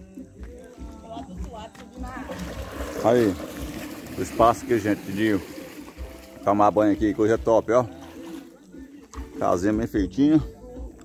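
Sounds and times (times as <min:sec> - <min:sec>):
water splashing from wading: 0:01.7 - 0:09.8.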